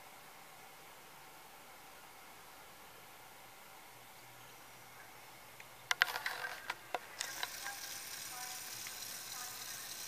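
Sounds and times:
faint hiss: 0:00.0 - 0:10.0
sharp clicks and knocks: 0:05.9 - 0:10.0.

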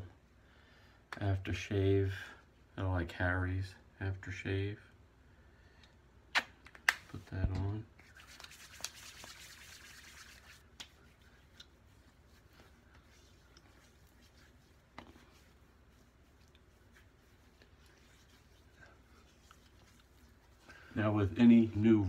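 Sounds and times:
hands rubbing face: 0:06.4 - 0:22.0.

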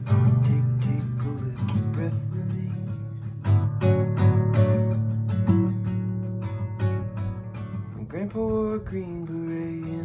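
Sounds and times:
classical guitar fingerstyle: 0:00.0 - 0:10.0.

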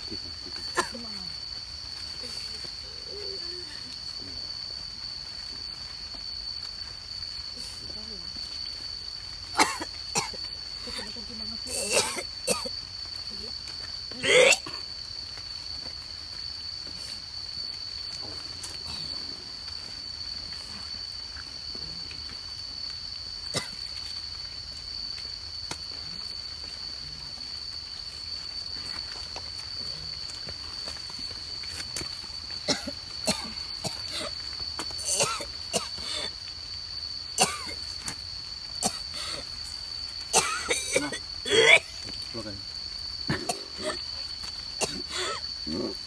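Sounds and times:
person coughing: 0:09.6 - 0:10.4, 0:11.7 - 0:12.7, 0:32.7 - 0:33.6, 0:43.3 - 0:44.0, 0:44.8 - 0:45.4.

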